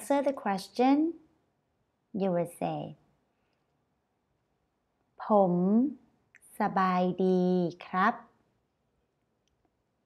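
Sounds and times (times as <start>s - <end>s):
woman speaking: 0.0s - 1.2s, 2.2s - 3.0s, 5.2s - 8.3s.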